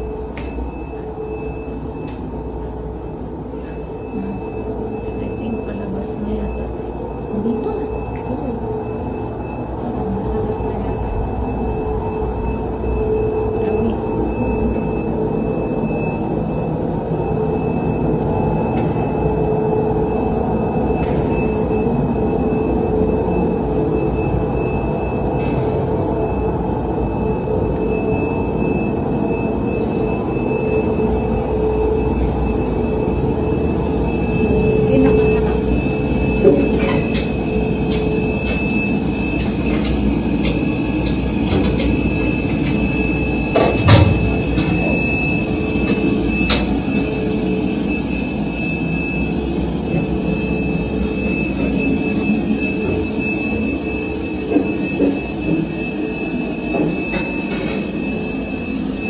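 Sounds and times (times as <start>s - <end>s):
low machine rumble: 0.0s - 59.0s
thin whine: 0.0s - 59.0s.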